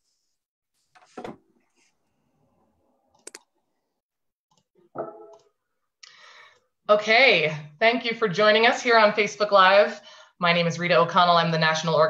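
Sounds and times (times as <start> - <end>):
sharp clicks: 3.2 - 3.5.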